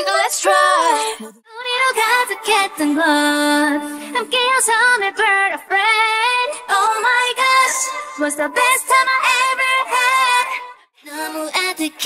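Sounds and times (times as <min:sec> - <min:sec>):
pop song with female vocals: 0:00.0 - 0:12.0.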